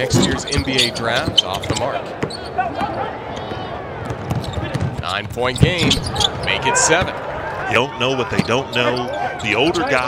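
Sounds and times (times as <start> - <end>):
shoe squeaks: 0.0 - 3.1, 4.3 - 7.0, 8.2 - 10.0
basketball bouncing on hardwood: 4.0 - 5.0.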